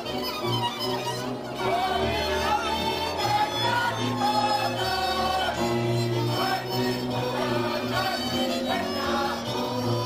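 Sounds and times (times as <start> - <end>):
double bass: 0.0 - 10.0
fiddle: 0.0 - 10.0
group of voices singing: 1.4 - 10.0.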